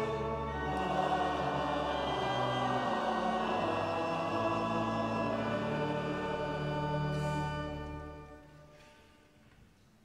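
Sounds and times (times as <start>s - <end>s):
congregation singing: 0.0s - 8.7s
pipe organ chords: 0.0s - 8.9s.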